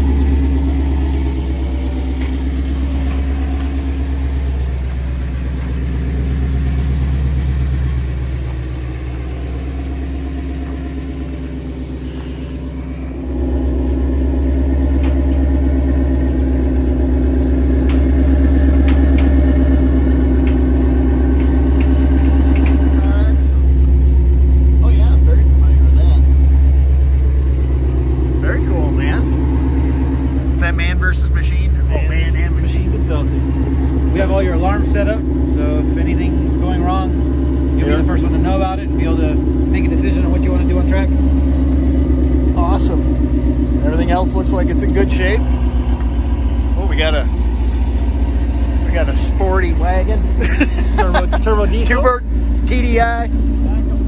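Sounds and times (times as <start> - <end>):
race car engine idling: 0.0 - 54.0.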